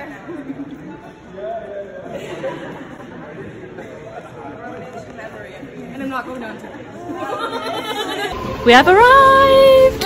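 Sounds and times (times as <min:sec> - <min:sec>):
chatter in echoing hall: 0:00.0 - 0:10.0.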